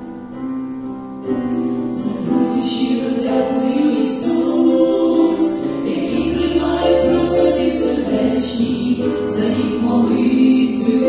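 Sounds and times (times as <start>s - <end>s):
piano accompaniment: 0.0s - 11.0s
women singing in harmony: 1.9s - 11.0s.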